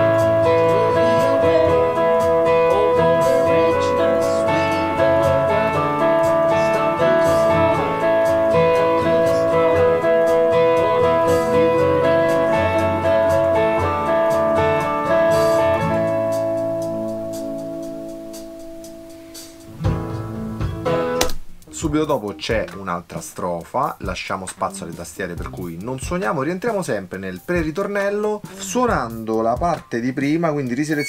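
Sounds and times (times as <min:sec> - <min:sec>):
overdriven electric guitar ostinato: 0:00.0 - 0:21.8
backing track music: 0:00.0 - 0:31.0.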